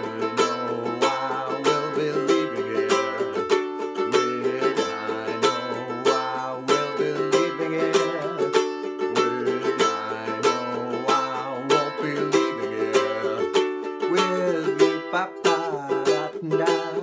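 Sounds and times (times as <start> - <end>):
ukulele strumming: 0.0 - 17.0.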